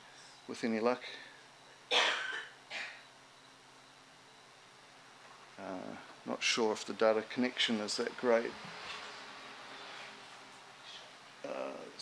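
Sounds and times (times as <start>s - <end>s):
person coughing: 1.9s - 3.0s.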